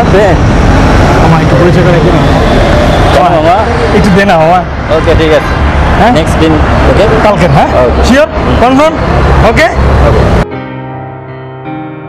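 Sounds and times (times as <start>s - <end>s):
men talking: 0.0s - 10.4s
street traffic rumble: 0.0s - 10.5s.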